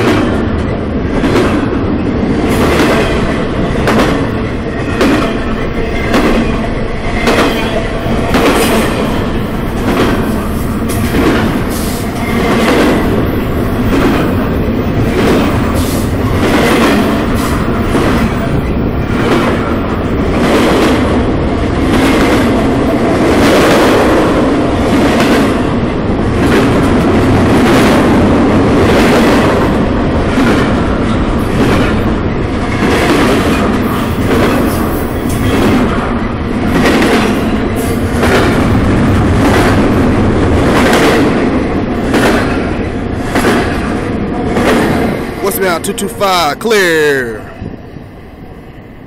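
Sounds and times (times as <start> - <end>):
freight train wheels rumbling on rail: 0.0 - 49.0.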